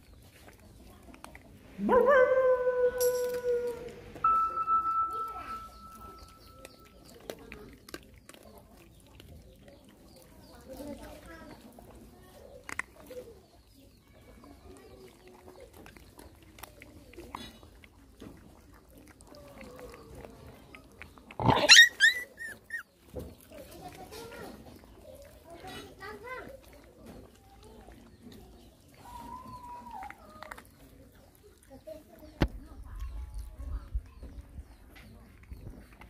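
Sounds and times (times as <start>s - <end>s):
dogs chewing: 0.0s - 36.0s
puppies whining: 1.9s - 7.1s, 21.4s - 23.1s, 28.9s - 30.7s
teeth and food clicking on bowl: 5.2s - 11.0s, 14.3s - 28.5s
puppies yelping: 21.3s - 23.0s.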